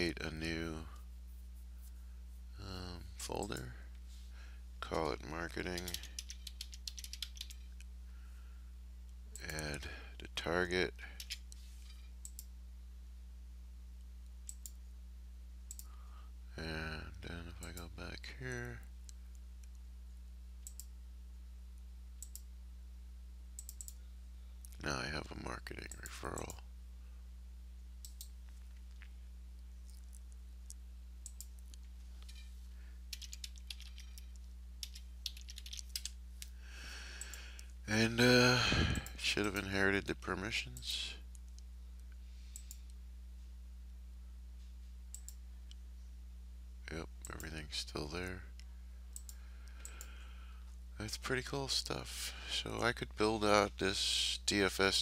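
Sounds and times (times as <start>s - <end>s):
steady low hum: 0.0s - 55.0s
man murmuring: 2.6s - 3.8s, 16.5s - 18.8s, 37.9s - 41.2s
computer mouse clicks: 5.7s - 7.7s, 11.2s - 11.6s, 12.2s - 12.5s, 14.5s - 14.8s, 15.7s - 15.9s, 20.6s - 20.9s, 22.2s - 22.5s, 23.6s - 24.0s, 28.0s - 28.4s, 31.2s - 32.4s, 33.1s - 36.5s, 42.6s - 42.9s, 45.1s - 45.4s, 49.1s - 50.1s.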